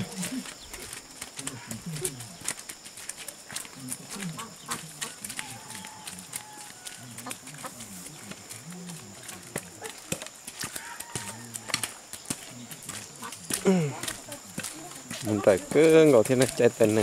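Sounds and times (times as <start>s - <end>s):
voices talking: 0.0s - 17.0s
bamboo stilts knocking on dirt: 4.6s - 17.0s.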